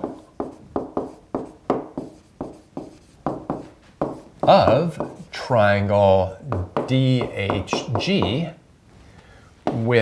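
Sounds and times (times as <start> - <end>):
stylus tapping on tablet: 0.0 - 5.2, 6.5 - 8.5.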